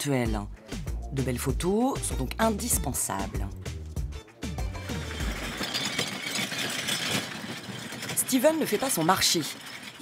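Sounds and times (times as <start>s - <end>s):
trolley rolling over concrete: 4.5s - 10.0s.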